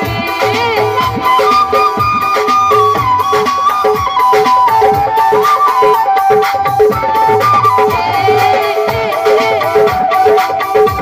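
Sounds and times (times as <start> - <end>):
hand drum rhythm: 0.0 - 11.0
harmonium: 0.0 - 11.0
flute melody: 0.6 - 11.0.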